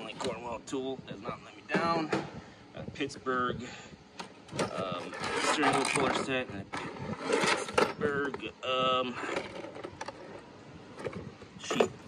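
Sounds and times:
plastic tray crinkling and scraping: 4.6s - 8.1s.

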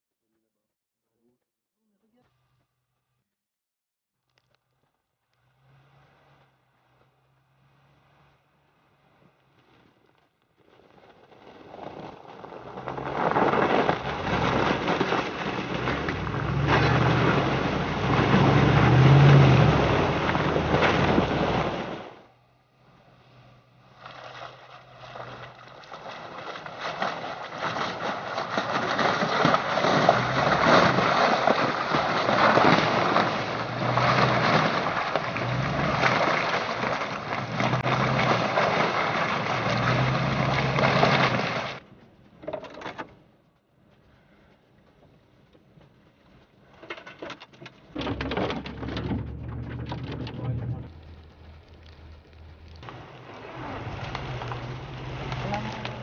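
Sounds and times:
engine running under load: 12.6s - 41.8s, 47.9s - 56.0s
water splashing: 12.7s - 22.3s, 23.2s - 41.8s, 47.8s - 56.0s.

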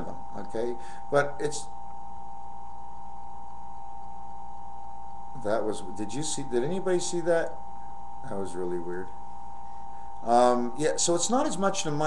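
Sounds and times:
background hiss: 0.0s - 12.0s
high-pitched electrical whine: 0.0s - 12.0s
low hum: 0.0s - 12.0s.

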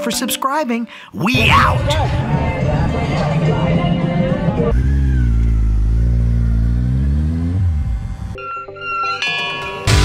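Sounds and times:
motorcycle engine pulling off: 2.2s - 8.4s
electronic musical tones: 6.7s - 9.7s.

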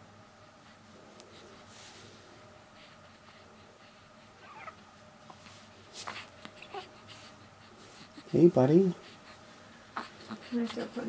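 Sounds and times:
newborn baby squeaks: 4.4s - 4.8s.

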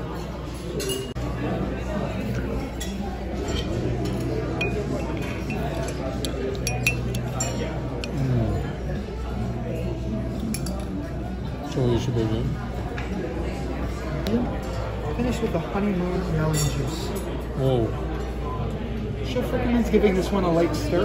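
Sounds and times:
murmur of dining chatter: 0.0s - 21.0s
metal spoon clinking glass bowl: 2.8s - 8.2s.

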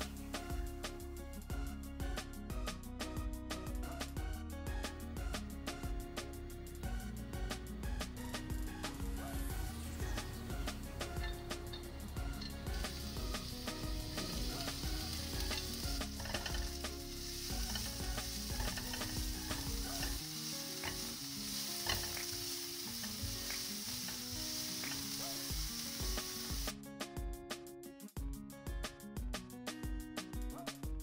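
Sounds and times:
garlic sizzling in hot oil: 6.2s - 26.8s
spatula scraping clicks: 14.2s - 20.2s.

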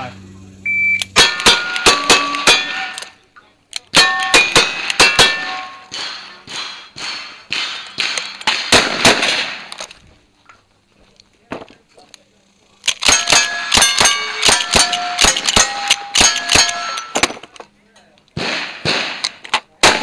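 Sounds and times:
shot timer beep: 0.6s - 1.8s
steel plates ringing: 1.1s - 3.2s, 4.0s - 8.4s, 13.1s - 17.4s
shotgun shots: 3.9s - 9.8s, 13.0s - 17.4s, 18.4s - 20.0s.

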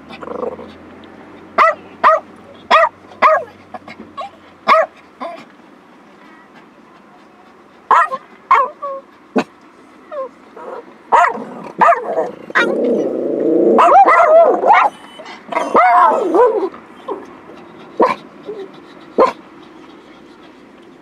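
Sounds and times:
dog barking and yelping: 1.6s - 5.5s, 7.9s - 20.4s
dog whining: 10.1s - 17.3s.

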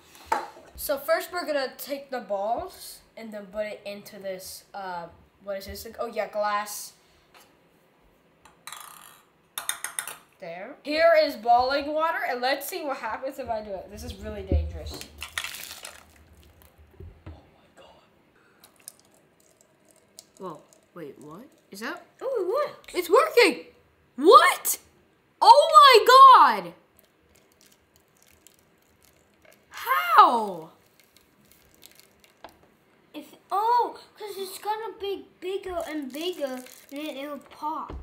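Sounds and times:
boiling water pouring and splashing: 15.0s - 17.1s, 18.6s - 21.8s, 26.9s - 32.7s, 35.7s - 37.5s
water trickling into dish: 18.6s - 22.1s, 30.9s - 32.5s.

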